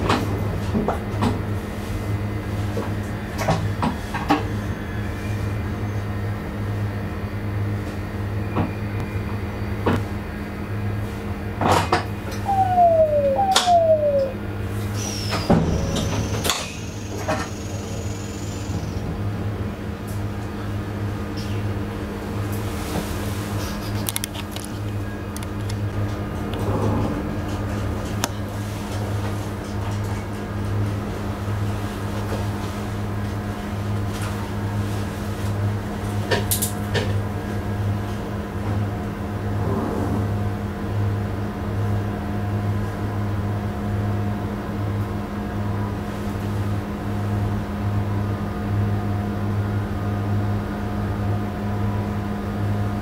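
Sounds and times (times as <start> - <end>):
low engine hum: 12.3 - 15.1
high falling tone: 12.4 - 14.4
short falling tones: 12.4 - 14.4.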